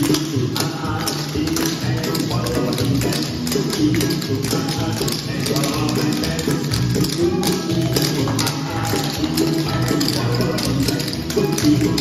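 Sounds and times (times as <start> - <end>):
recorded song with steady beat: 0.0 - 12.0.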